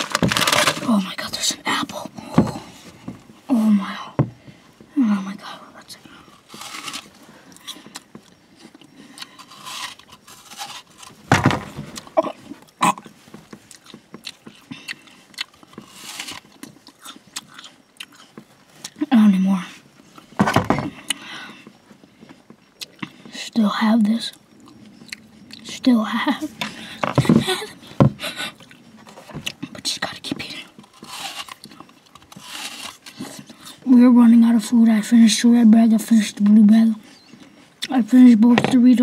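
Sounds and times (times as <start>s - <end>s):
apple crunching: 0.0s - 1.3s, 6.2s - 19.1s, 26.6s - 33.8s
wet chewing: 6.2s - 11.2s, 11.9s - 19.0s, 21.0s - 23.3s, 24.3s - 25.8s, 30.6s - 33.8s.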